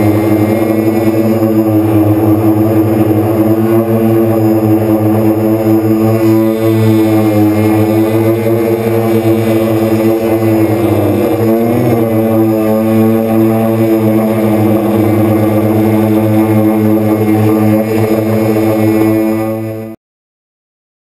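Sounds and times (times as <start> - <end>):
quadcopter propellers humming: 0.0 - 20.0.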